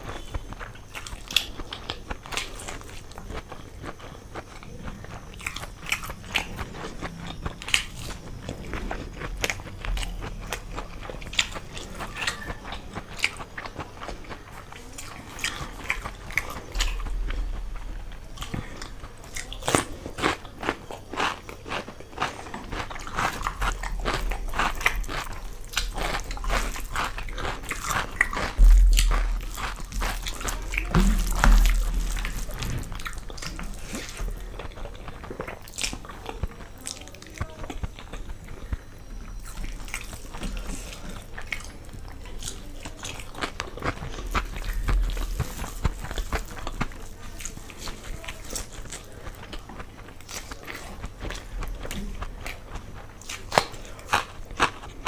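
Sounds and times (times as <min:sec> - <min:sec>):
chewing and crunching food: 0:00.0 - 0:55.0.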